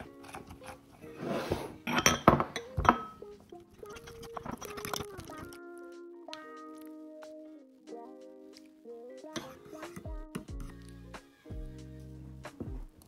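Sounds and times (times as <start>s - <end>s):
spoon stirring in a mug: 0.0s - 0.9s, 1.8s - 5.6s, 9.3s - 11.0s
background music with held tones: 0.0s - 13.0s.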